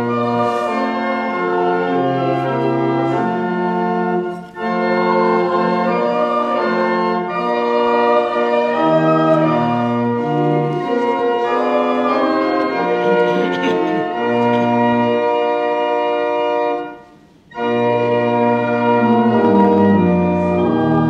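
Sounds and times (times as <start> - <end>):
church organ playing hymn: 0.0 - 21.0.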